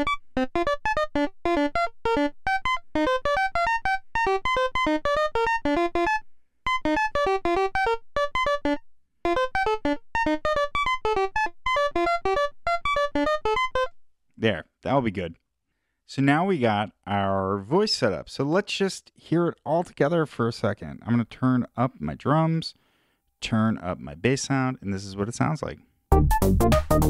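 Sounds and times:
synthesizer sequenced notes: 0.0s - 14.0s, 26.1s - 27.0s.

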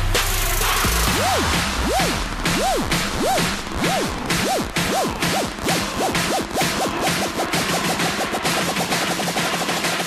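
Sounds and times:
synth tone swooping: 1.1s - 7.0s.

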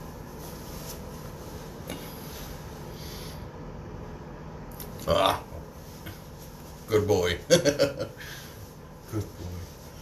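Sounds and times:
towel rubbing face: 0.0s - 3.3s, 5.4s - 10.0s.

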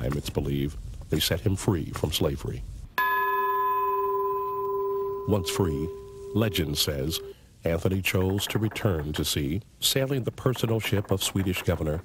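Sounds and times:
ship's bell ringing: 3.0s - 7.3s.

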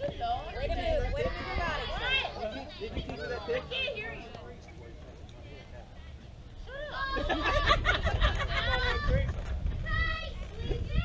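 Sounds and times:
girls shouting: 6.7s - 7.7s.

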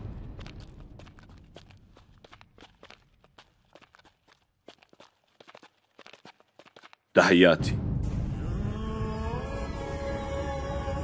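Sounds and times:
light footsteps: 0.1s - 7.2s.

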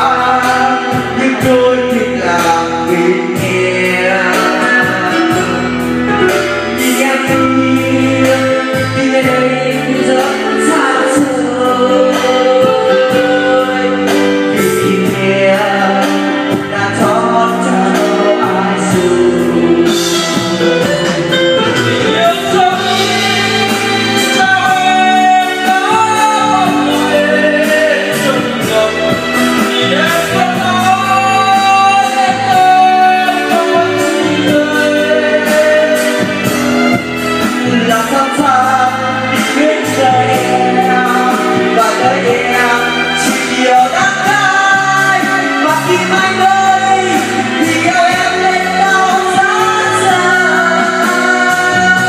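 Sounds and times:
backing track over speakers: 0.0s - 52.0s
man singing into microphone: 0.0s - 52.0s.

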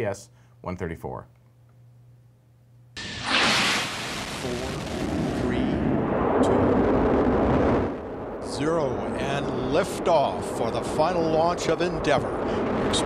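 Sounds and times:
rocket launch roar: 3.0s - 13.0s.

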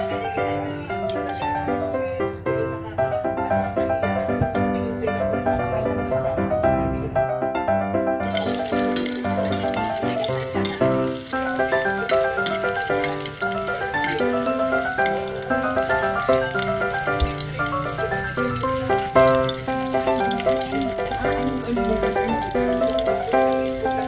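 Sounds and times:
background piano music: 0.0s - 24.0s
garlic sizzling in hot oil: 8.2s - 24.0s.

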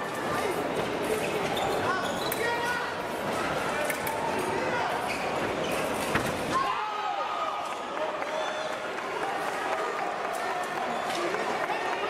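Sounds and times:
murmur of voices in echoing hall: 0.0s - 12.0s.

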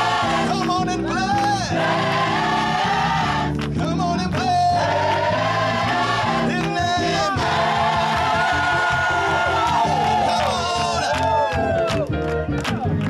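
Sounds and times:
gospel choir singing: 0.0s - 0.8s, 1.6s - 3.6s, 4.2s - 11.1s.

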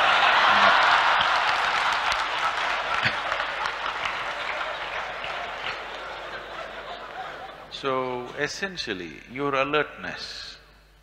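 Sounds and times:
audience applause: 0.0s - 7.6s.

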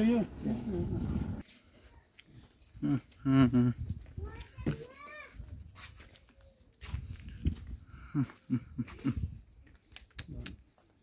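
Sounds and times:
footsteps on dry dirt: 3.8s - 9.9s.

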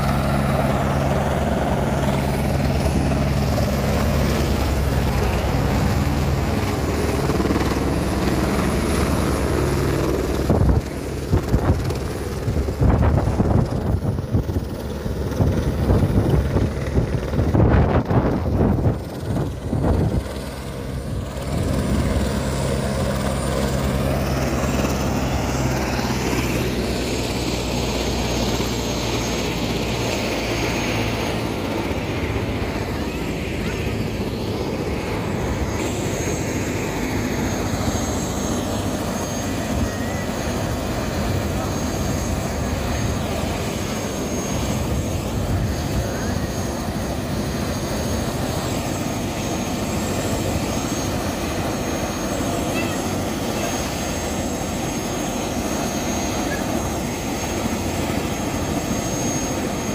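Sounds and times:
helicopter turbine whine: 0.0s - 59.9s
low rotor hum: 0.0s - 59.9s.

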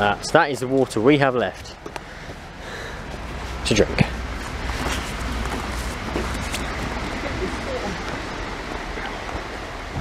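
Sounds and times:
wind blowing on microphone: 6.0s - 10.0s.

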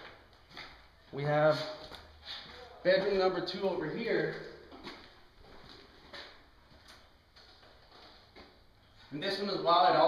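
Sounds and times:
faint footsteps on bare floor: 0.0s - 9.5s.

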